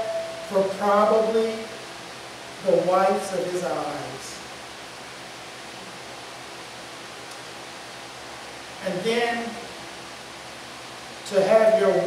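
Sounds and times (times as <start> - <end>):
man speaking: 0.0 - 1.8, 2.6 - 4.4, 8.8 - 9.7, 11.3 - 12.0
room tone hiss: 0.0 - 12.0.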